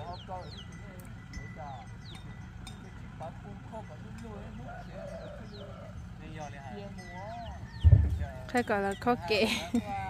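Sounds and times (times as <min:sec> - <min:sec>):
low wavering bird calls: 0:00.0 - 0:03.8, 0:04.4 - 0:09.4.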